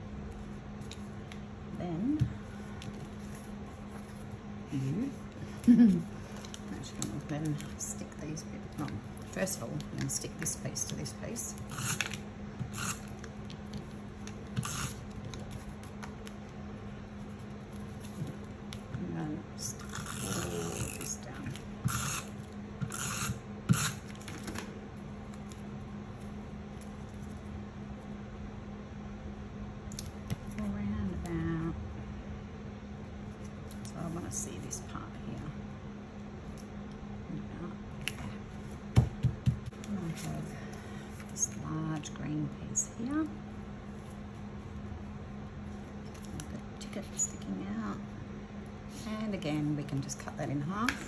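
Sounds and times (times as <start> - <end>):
steady low hum: 0.0 - 51.0.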